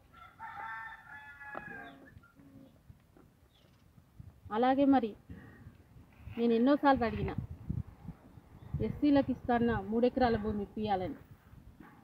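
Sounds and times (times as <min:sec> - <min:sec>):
faint rooster crowing: 0:00.0 - 0:02.7.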